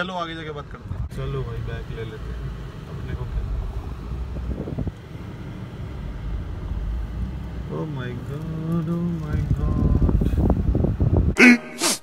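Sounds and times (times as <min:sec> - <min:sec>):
car engine running inside cabin: 0:00.9 - 0:11.3.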